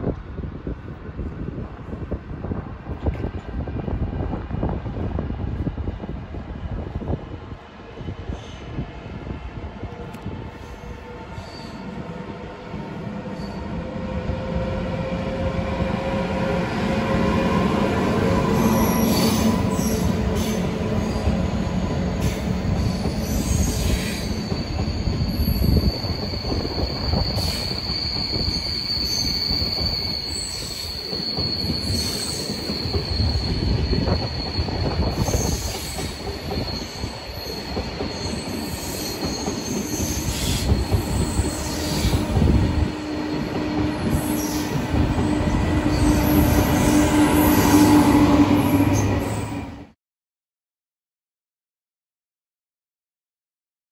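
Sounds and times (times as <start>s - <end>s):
train coaches rumbling over track: 0.1s - 50.0s
high wheel squeal: 22.2s - 49.6s.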